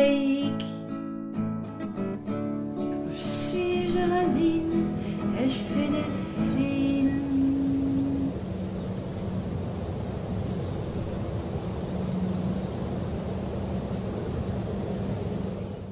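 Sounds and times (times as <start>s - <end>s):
faint hum: 3.0s - 15.9s.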